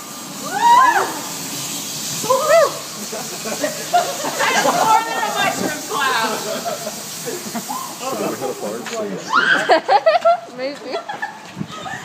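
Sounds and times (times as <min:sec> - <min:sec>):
smoke bomb hissing: 0:00.0 - 0:10.0.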